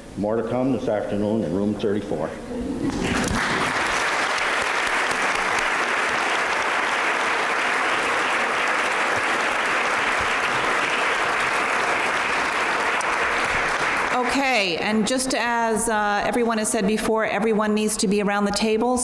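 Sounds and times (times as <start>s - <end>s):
audience applauding: 2.9s - 14.8s.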